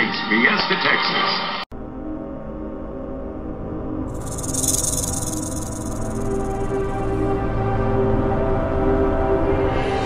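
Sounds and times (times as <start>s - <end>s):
dark low music drone: 1.8s - 10.0s
rattlesnake rattle buzzing: 4.1s - 7.2s.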